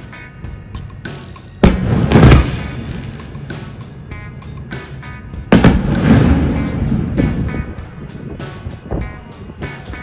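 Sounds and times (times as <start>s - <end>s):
background music with steady beat: 0.0s - 10.0s
firework bang with rumbling decay: 1.6s - 2.7s, 5.5s - 7.5s.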